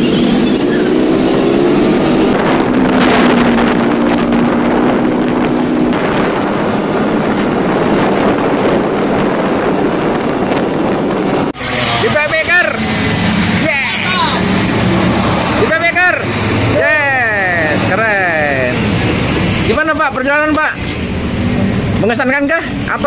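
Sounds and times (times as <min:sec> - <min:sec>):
wind buffeting microphone: 0:00.0 - 0:11.7
motorcycle engine and road noise: 0:00.0 - 0:23.0
passing motorbikes: 0:00.0 - 0:23.0
man calling out: 0:15.6 - 0:18.8.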